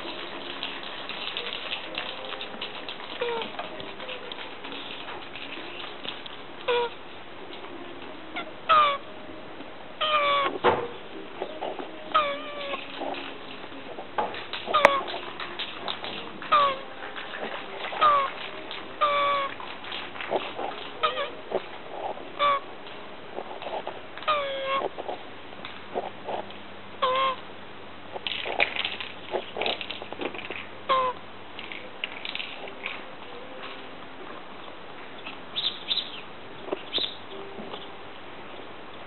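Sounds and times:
tortoise squeaky mating cries: 0.0s - 5.9s, 6.6s - 7.0s, 8.3s - 9.1s, 10.0s - 22.8s, 23.4s - 25.2s, 27.0s - 27.4s, 29.3s - 33.0s, 35.2s - 37.9s.

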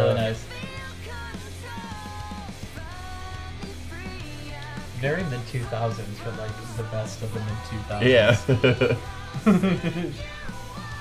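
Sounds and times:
female vocals singing in harmony: 0.0s - 11.0s
guitar and bass: 0.0s - 11.0s.

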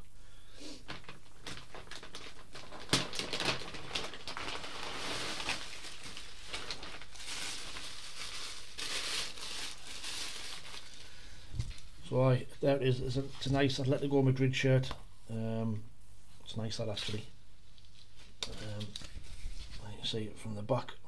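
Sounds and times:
packaging crinkling: 0.8s - 11.9s.

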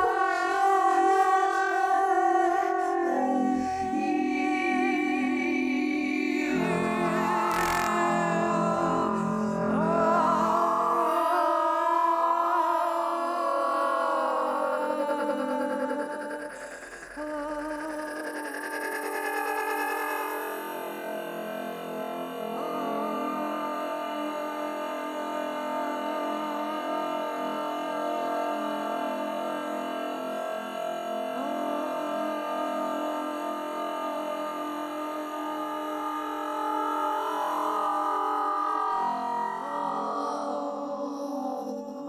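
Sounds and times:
drone of processed voice tones: 5.8s - 23.5s.

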